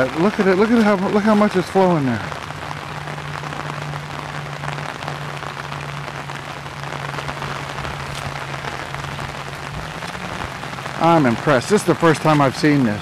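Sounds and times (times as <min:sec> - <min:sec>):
rain pattering on umbrella: 0:00.0 - 0:13.0
low hum: 0:00.1 - 0:12.1.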